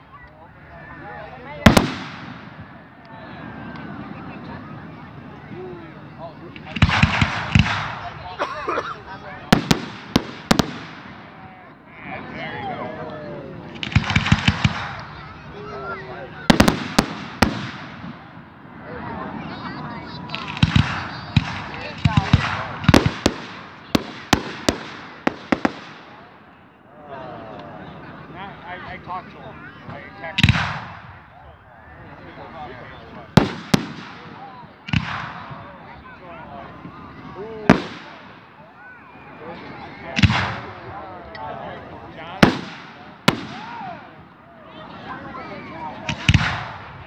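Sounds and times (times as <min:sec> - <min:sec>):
people talking: 0:00.0 - 0:47.0
fireworks bangs and cracks: 0:01.6 - 0:02.9, 0:06.4 - 0:08.4, 0:09.4 - 0:11.5, 0:13.6 - 0:15.5, 0:16.4 - 0:18.4, 0:20.0 - 0:26.3, 0:30.3 - 0:31.2, 0:33.3 - 0:35.9, 0:37.6 - 0:38.7, 0:42.3 - 0:44.3, 0:46.0 - 0:47.0
firework bang: 0:33.4 - 0:35.7, 0:37.7 - 0:38.5, 0:42.4 - 0:43.8.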